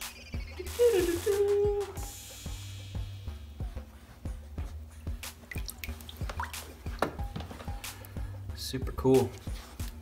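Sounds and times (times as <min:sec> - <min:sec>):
water splashing and dripping: 0:05.4 - 0:07.2.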